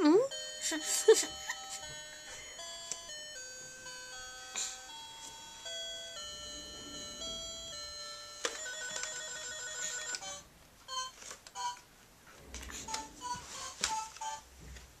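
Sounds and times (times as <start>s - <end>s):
toy beeping melody: 0.1s - 11.8s.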